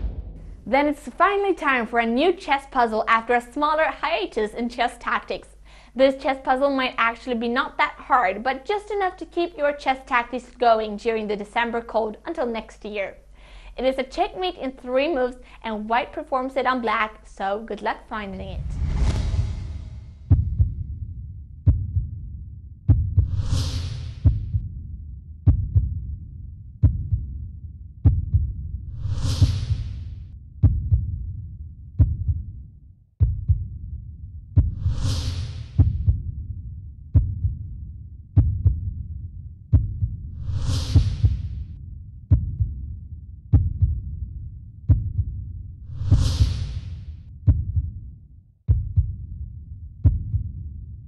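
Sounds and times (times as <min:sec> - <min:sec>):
deep heartbeat-like thud: 0:00.0 - 0:00.7, 0:18.6 - 0:26.2, 0:26.8 - 0:27.4, 0:28.0 - 0:31.4, 0:32.0 - 0:32.5, 0:33.2 - 0:48.0, 0:48.7 - 0:49.3, 0:50.0 - 0:50.7
airy swish: 0:18.4 - 0:20.3.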